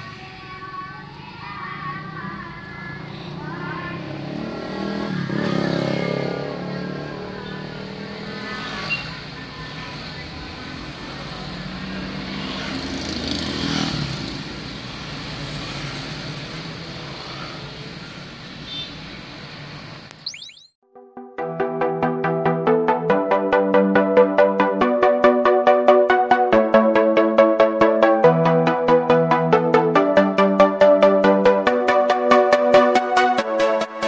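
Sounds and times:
car engine and road hum: 0.2s - 20.6s.

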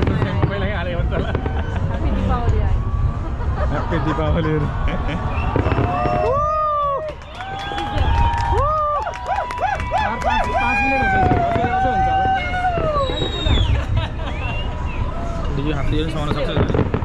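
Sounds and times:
fireworks booming and crackling: 0.0s - 17.0s
people talking and exclaiming: 0.0s - 17.0s.

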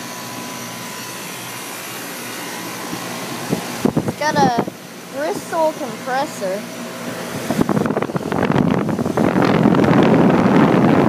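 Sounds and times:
air conditioner fan whoosh: 0.0s - 11.0s.

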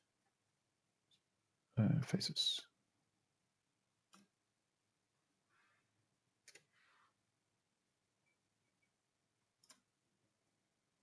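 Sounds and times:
computer mouse and keyboard clicks: 6.4s - 6.8s, 9.6s - 9.9s.

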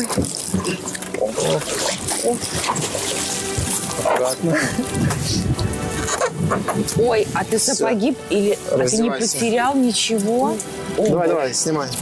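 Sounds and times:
background music: 0.0s - 12.0s
water splashing and streaming: 0.0s - 12.0s
strained grunts: 0.5s - 2.7s.

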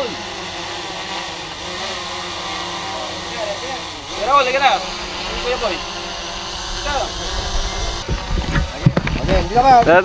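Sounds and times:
drone propellers whirring: 0.0s - 10.0s.

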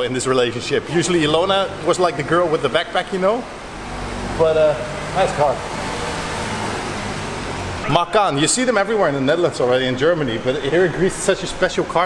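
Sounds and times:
road noise: 0.0s - 12.0s
car engine hum: 0.1s - 12.0s.

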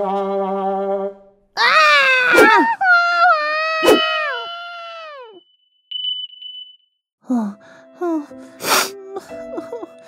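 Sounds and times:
cartoon woman screaming in pain: 1.6s - 5.4s.

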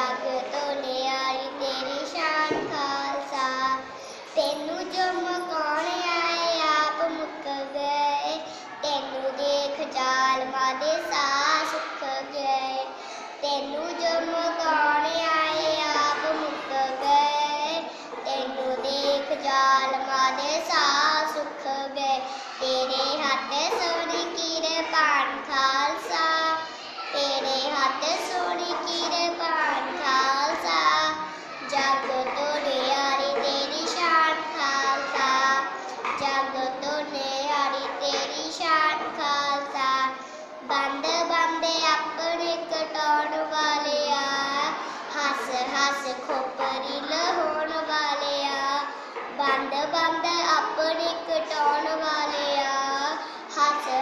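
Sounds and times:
child singing: 0.0s - 54.0s.

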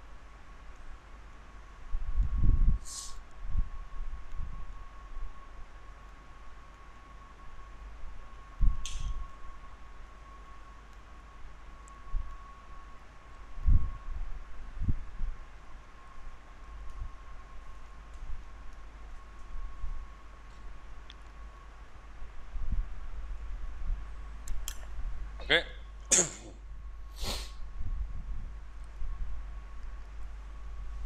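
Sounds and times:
faint high whine: 0.0s - 31.0s
short high hisses: 2.8s - 3.2s, 27.1s - 27.6s.

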